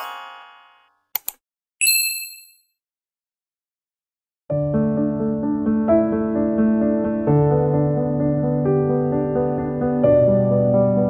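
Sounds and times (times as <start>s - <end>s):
bright bell ding: 0.0s - 0.9s, 1.8s - 2.7s.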